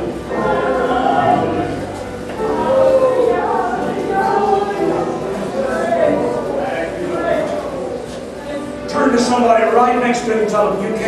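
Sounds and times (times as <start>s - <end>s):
choir singing gospel: 0.0s - 11.0s.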